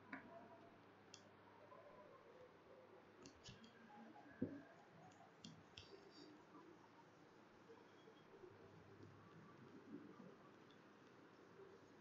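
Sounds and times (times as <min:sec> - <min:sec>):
faint sharp clicks: 0:03.2 - 0:03.8.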